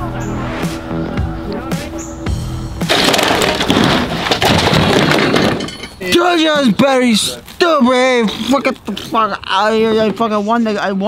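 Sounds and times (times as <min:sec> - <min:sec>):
background music: 0:00.0 - 0:03.4
cups and cans scattering: 0:02.8 - 0:06.4
folding table crashing: 0:02.8 - 0:06.7.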